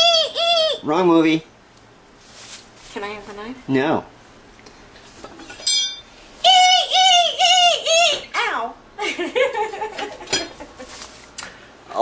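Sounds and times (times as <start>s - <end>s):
woman's high-pitched squeal: 6.4s - 8.4s.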